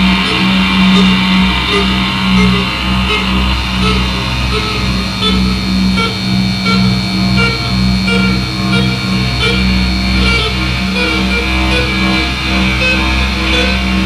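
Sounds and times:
deep bass hum: 0:00.0 - 0:14.0
pulsing low drone: 0:00.0 - 0:14.0
short electronic blips: 0:00.0 - 0:14.0
thin high tone: 0:00.0 - 0:14.0.

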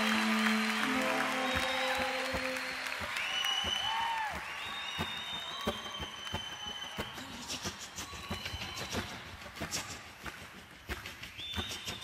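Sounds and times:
applause: 0:00.0 - 0:10.6
music: 0:00.0 - 0:12.0
high whistle-like tones: 0:00.9 - 0:09.6.

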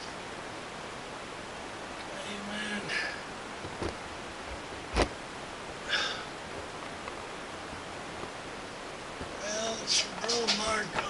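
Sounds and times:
steady background hiss: 0:00.0 - 0:11.0.

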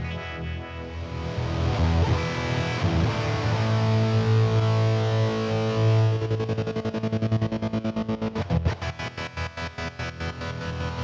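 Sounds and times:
distorted electric guitar with stutter: 0:00.0 - 0:11.0.

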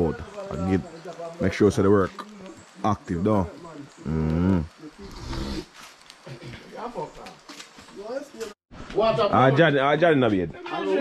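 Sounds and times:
people talking indistinctly: 0:00.0 - 0:05.6.

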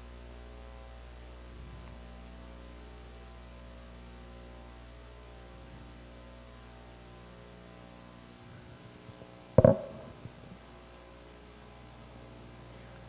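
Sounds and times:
electrical mains hum: 0:00.0 - 0:13.0
sharp ringing knock: 0:09.6 - 0:10.2.

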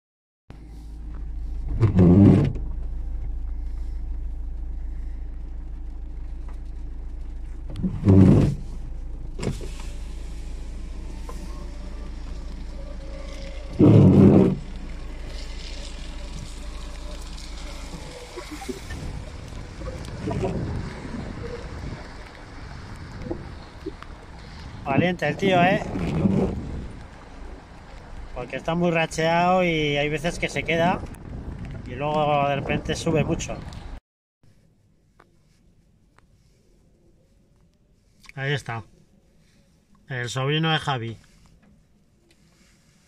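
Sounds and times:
low rumble in car cabin: 0:00.5 - 0:34.0
gusty storm wind: 0:16.2 - 0:28.8, 0:29.6 - 0:34.0.

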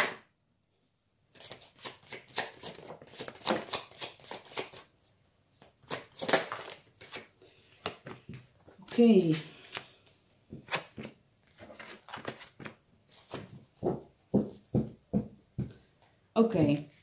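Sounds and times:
cards shuffled and dealt: 0:01.3 - 0:04.9, 0:05.6 - 0:14.6.

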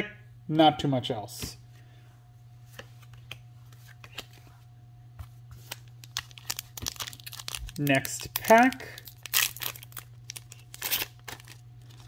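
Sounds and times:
steady low hum: 0:00.0 - 0:12.0
cards clicking and rustling: 0:02.8 - 0:04.4, 0:05.6 - 0:12.0.

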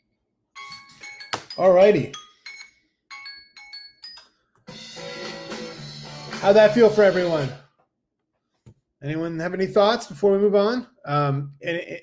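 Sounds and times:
electronic alarm chime: 0:00.5 - 0:04.5.

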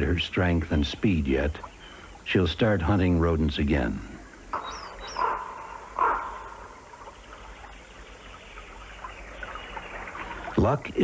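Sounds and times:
running stream water: 0:00.0 - 0:11.0
harsh bird calls: 0:01.2 - 0:02.8, 0:04.2 - 0:11.0
high falling bird chirps: 0:04.3 - 0:10.6.

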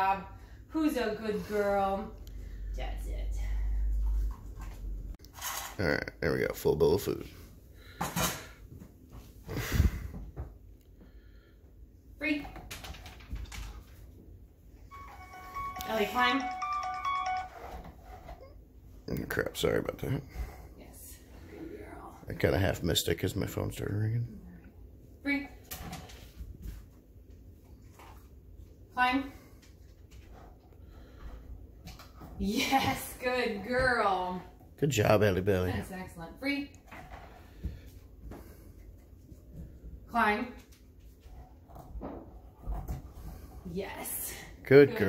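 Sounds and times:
mobile phone ringtone melody: 0:14.9 - 0:18.0.

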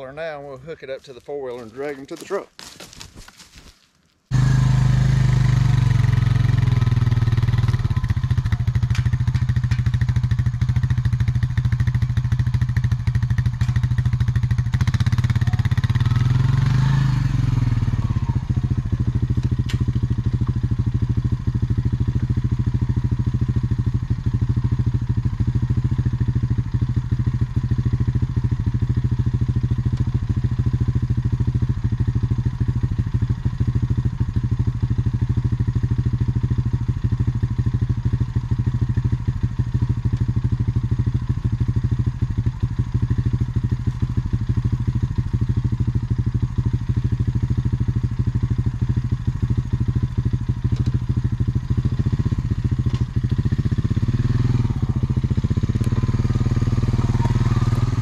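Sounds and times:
atv engine revving and idling: 0:04.3 - 0:58.0.

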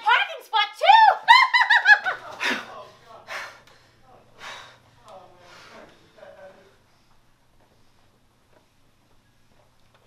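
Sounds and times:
woman cackling laugh: 0:01.2 - 0:02.6.

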